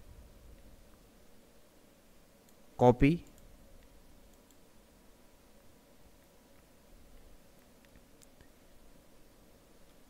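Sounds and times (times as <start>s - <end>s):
faint clicks: 3.2s - 4.6s, 6.2s - 8.6s.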